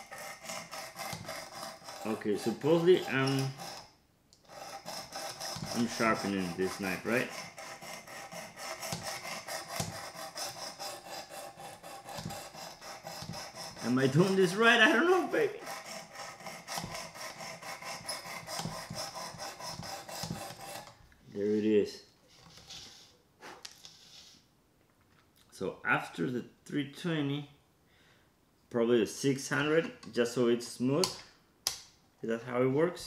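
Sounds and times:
knife rasping on sharpening plate: 0.0s - 3.9s, 4.5s - 20.9s.

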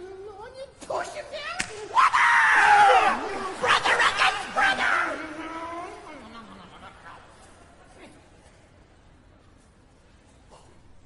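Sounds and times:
sharp smack: 1.6s - 1.9s.

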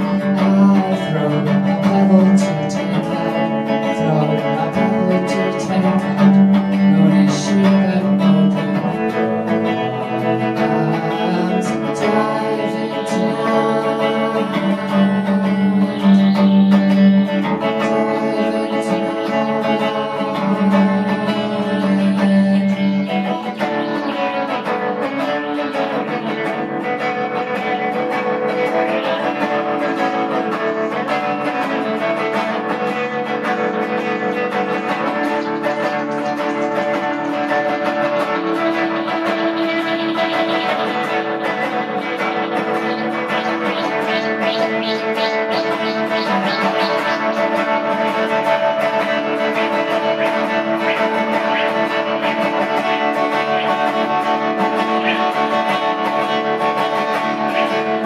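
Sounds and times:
electric guitar: 0.0s - 58.0s
indie band playing: 0.0s - 58.0s
person singing: 0.0s - 58.0s.

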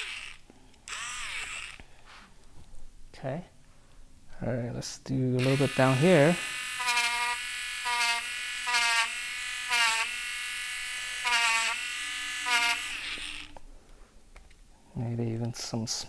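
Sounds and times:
electric eraser motor hum: 0.0s - 1.8s, 5.4s - 13.6s.

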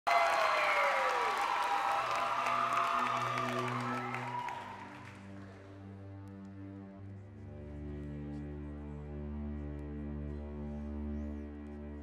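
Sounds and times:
audience applause and cheering: 0.0s - 6.1s.

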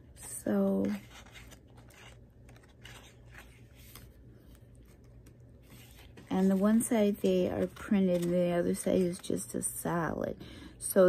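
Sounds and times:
low steady hum: 0.0s - 11.0s
paper cards rustling and flipping: 0.1s - 9.8s.

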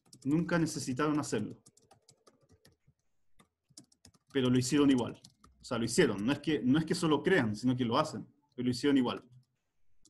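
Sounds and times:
typing on computer keyboard: 0.0s - 7.1s, 9.0s - 9.6s.

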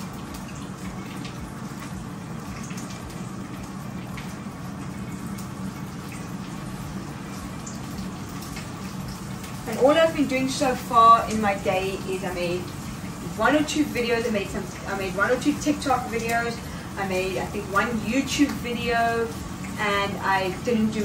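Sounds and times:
air fryer humming: 0.0s - 21.0s.

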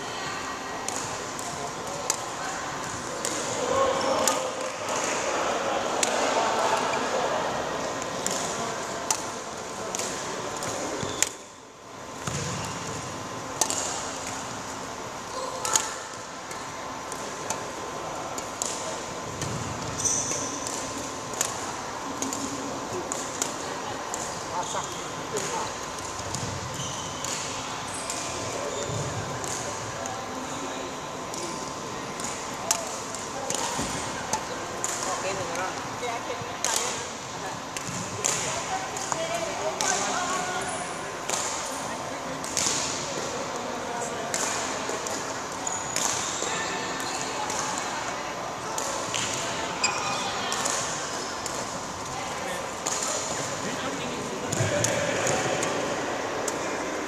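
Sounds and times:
badminton racket hitting shuttlecock: 13.6s - 14.5s.

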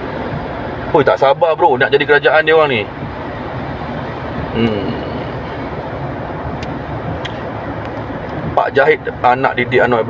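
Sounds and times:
car road and engine noise: 0.0s - 10.0s.

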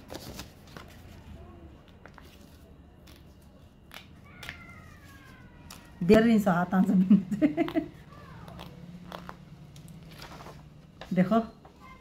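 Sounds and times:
paper rustling: 0.0s - 5.9s, 8.6s - 12.0s.

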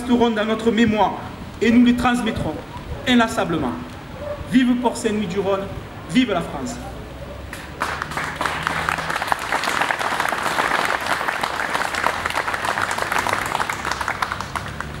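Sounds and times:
audience applauding: 7.5s - 15.0s.

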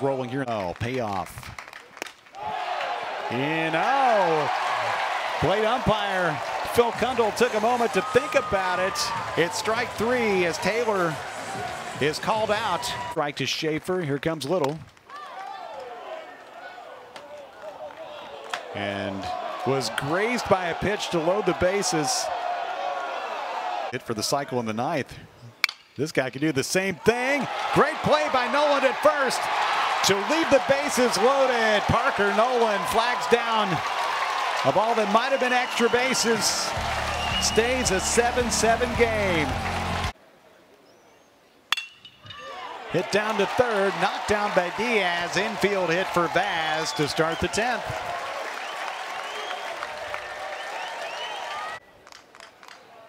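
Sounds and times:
metal bat striking ball: 41.7s - 42.4s.

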